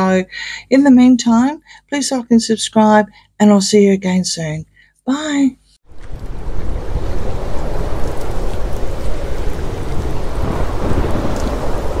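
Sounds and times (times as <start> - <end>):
stormy rain and thunder rumble: 5.9 - 12.0.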